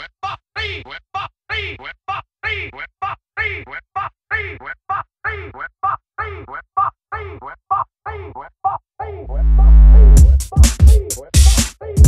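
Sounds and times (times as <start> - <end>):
stuttering chopped vocal sample: 0.0 - 12.0.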